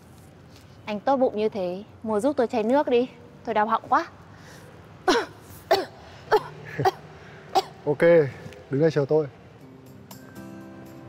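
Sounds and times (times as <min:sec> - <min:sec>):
woman coughing hoarsely: 0:05.0 - 0:07.8.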